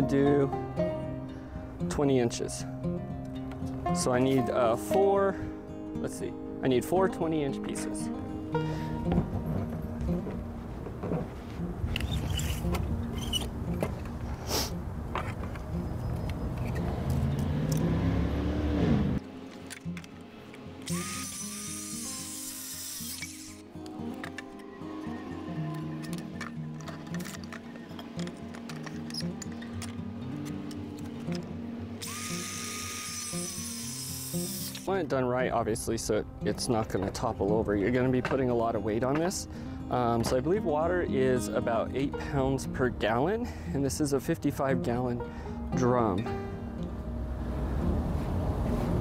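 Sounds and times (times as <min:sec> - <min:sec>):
background music: 0:00.0 - 0:49.0
circular saw cutting wood: 0:20.8 - 0:23.7, 0:32.0 - 0:34.9.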